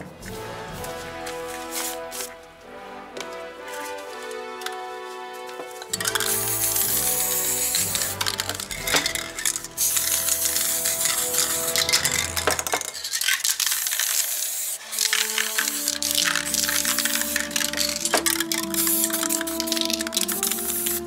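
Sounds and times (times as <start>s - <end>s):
background music: 0.0s - 12.8s, 15.0s - 21.0s
spray can ball rattling: 0.8s - 2.4s, 3.3s - 21.0s
spray can hissing: 5.8s - 21.0s.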